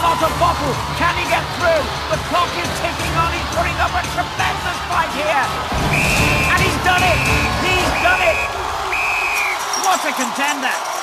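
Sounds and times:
crowd shouting: 0.0s - 11.0s
loud music with heavy beat: 0.9s - 8.9s.

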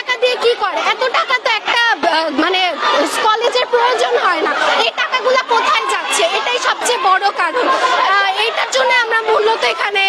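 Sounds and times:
crowd chatter: 0.0s - 10.0s
young woman talking: 0.0s - 10.0s.

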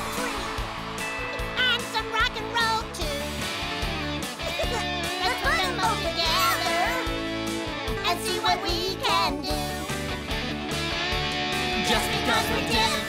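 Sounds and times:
guitars: 0.0s - 13.0s.

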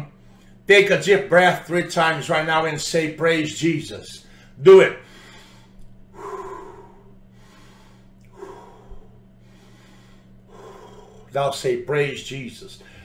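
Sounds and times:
faint electrical hum: 0.0s - 13.0s
man breathing deeply: 4.2s - 11.4s, 12.8s - 13.0s.

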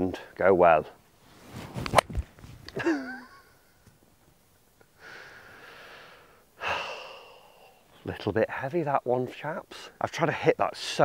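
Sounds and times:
breathy sighs: 5.0s - 7.8s.

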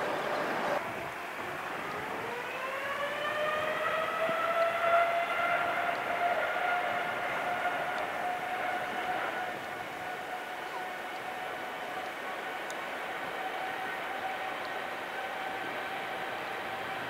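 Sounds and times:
jet engines spooling up: 0.0s - 17.0s.

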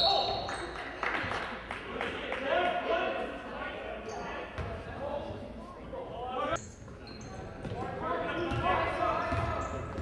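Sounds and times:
echoing crowd and player voices: 0.0s - 10.0s
high shoe squeak: 6.6s - 7.6s.

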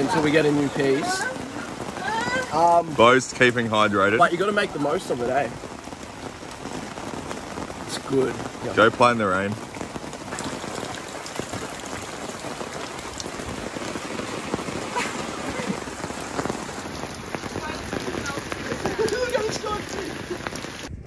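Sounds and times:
rain falling on standing water: 0.0s - 21.0s.

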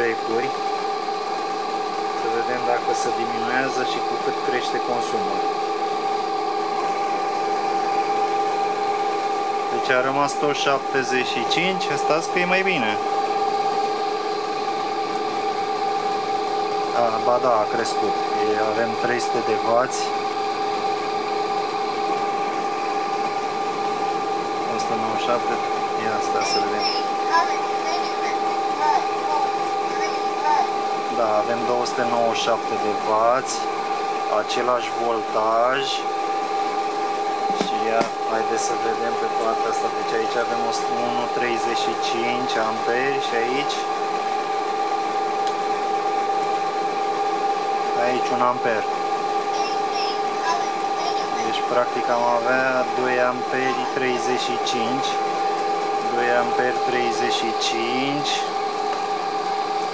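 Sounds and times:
electric motor humming and whining: 0.0s - 59.9s.

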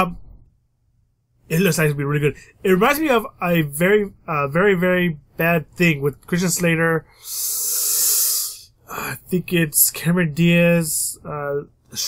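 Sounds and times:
man breathing out: 7.1s - 8.7s.

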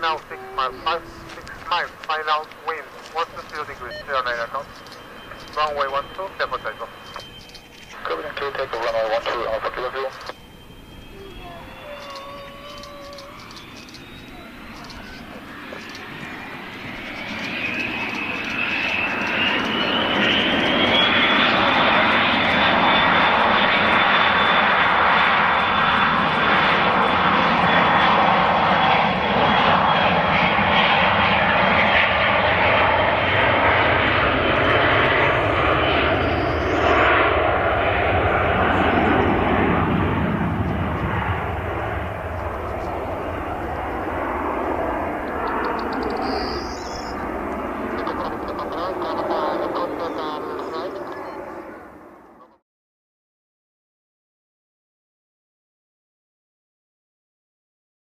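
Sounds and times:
jet engine whine rising: 0.0s - 52.3s
jet engines roaring at takeoff: 0.0s - 52.6s.

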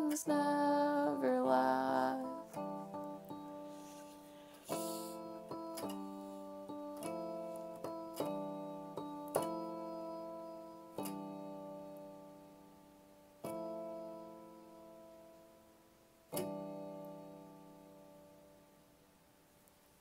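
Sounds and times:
slow piano-like keyboard chords: 0.0s - 20.0s.

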